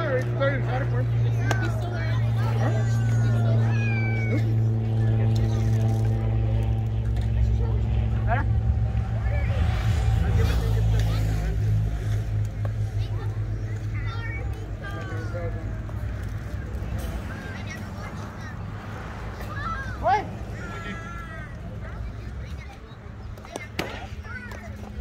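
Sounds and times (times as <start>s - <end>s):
low mechanical drone: 0.0s - 25.0s
voices and calls of players: 0.0s - 25.0s.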